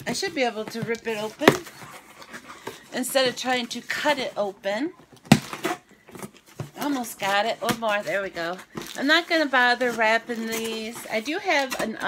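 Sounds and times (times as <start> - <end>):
cardboard rustling: 0.0 - 12.0.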